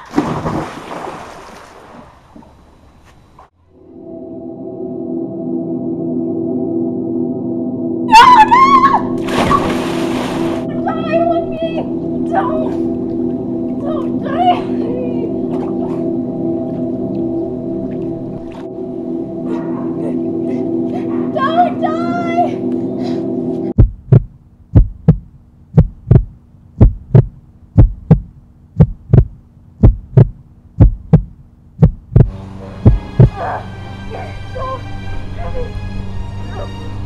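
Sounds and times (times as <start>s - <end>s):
droning hum: 2.2s - 37.0s
voice-like cry: 8.1s - 9.6s
heartbeat thumps: 23.8s - 33.5s.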